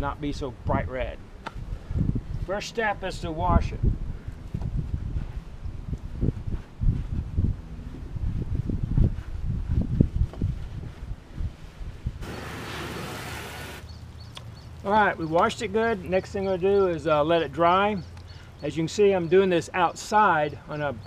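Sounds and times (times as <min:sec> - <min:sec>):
hose spraying water on plastic: 0:12.2 - 0:13.9.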